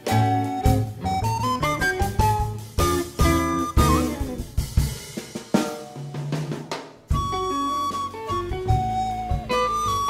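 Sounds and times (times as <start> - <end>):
drum break: 0.0 - 10.0
jazz-rock band playing: 0.0 - 10.0.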